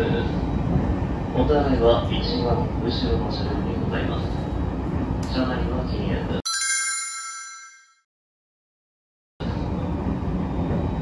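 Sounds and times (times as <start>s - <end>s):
bright bell-like chime: 6.5s - 8.0s.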